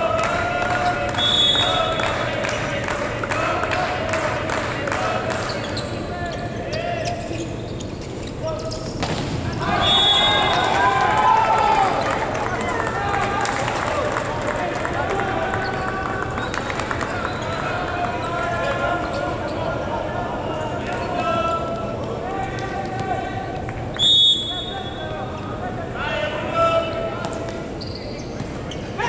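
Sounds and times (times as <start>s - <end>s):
volleyball hits: 8.9s - 10.8s
players shouting: 9.4s - 23.7s.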